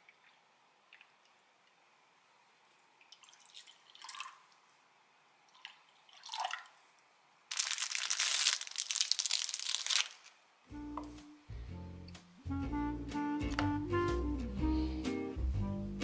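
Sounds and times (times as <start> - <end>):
liquid splash: 3.0 - 4.5, 5.5 - 6.8
milk pouring into glass bowl: 3.1 - 4.4
music: 10.7 - 16.0.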